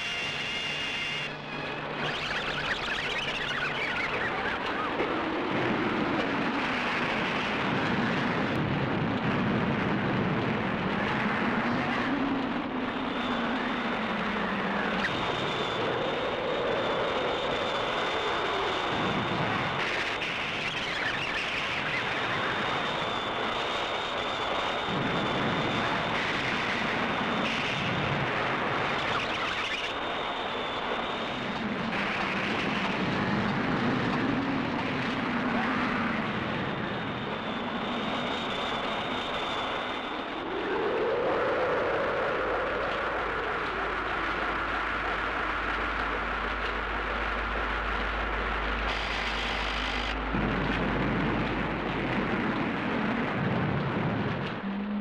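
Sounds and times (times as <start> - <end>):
steady high whine: 0.0 - 55.0
howl rising and falling in pitch: 33.0 - 50.8.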